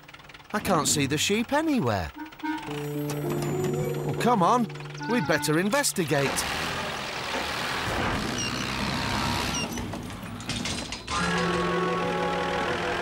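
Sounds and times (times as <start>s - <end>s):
tractor engine running: 0.0s - 13.0s
background music with held notes: 2.2s - 6.0s, 11.4s - 13.0s.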